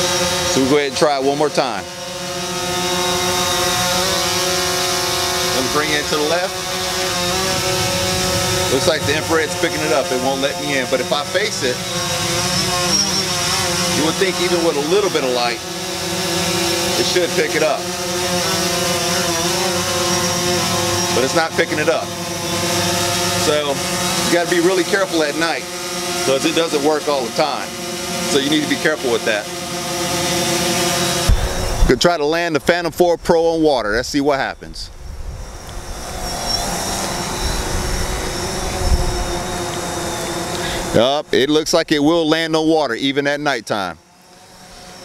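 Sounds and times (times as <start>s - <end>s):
drone propellers buzzing: 0.0s - 45.0s.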